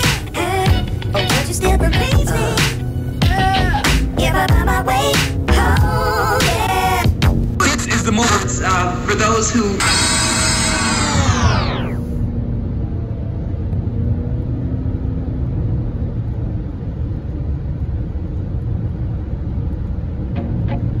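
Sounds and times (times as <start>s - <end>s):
car road rumble: 0.0s - 21.0s
steeply falling multi-pitched sound: 9.8s - 12.2s.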